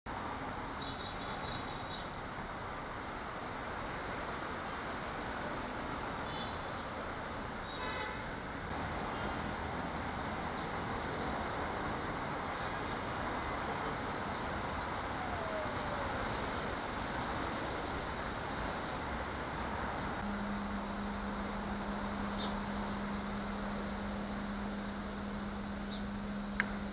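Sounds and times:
city street traffic: 0.1 - 26.9.

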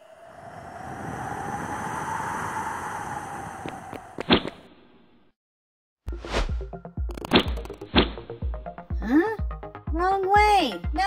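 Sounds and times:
sharp clicks: 7.1 - 8.0.

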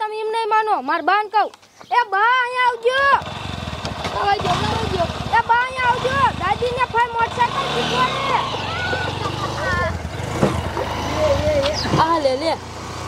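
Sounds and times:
women calling and talking: 0.0 - 12.8
motorcycle engine running slowly: 3.0 - 13.0.

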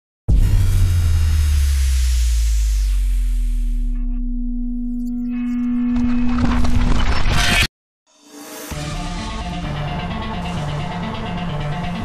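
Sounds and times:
loud hit: 0.3 - 3.9
deep low rumble: 0.3 - 6.9.

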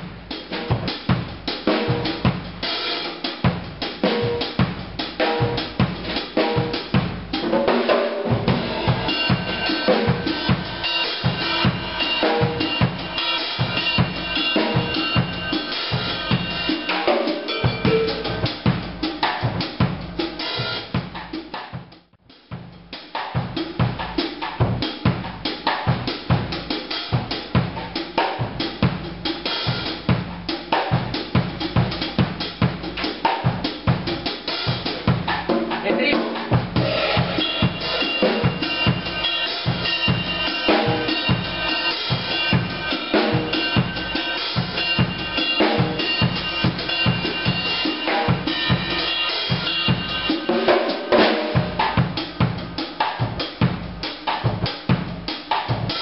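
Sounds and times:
drum kit playing: 0.0 - 56.0.

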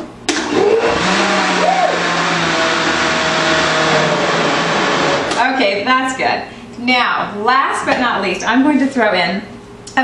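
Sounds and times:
blender running: 0.3 - 5.5.

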